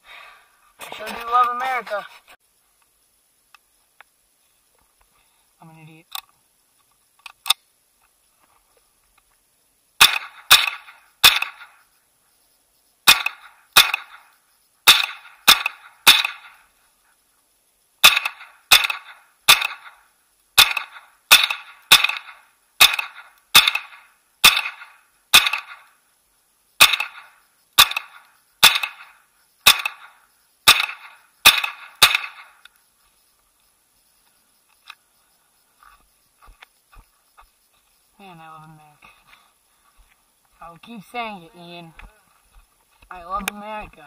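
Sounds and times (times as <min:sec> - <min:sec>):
rifle gunshots: 0:10.0 - 0:11.8, 0:13.0 - 0:16.6, 0:18.0 - 0:20.0, 0:20.6 - 0:25.9, 0:26.8 - 0:32.6.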